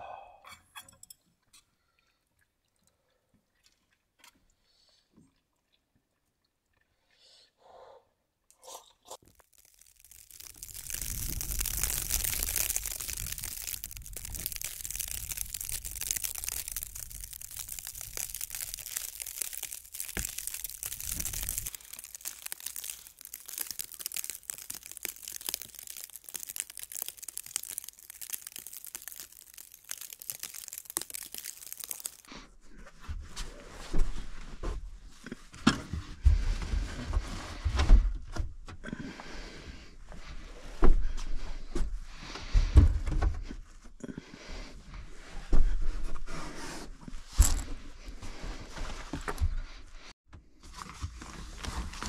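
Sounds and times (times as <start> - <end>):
snow ticking: 9.2 - 32.3.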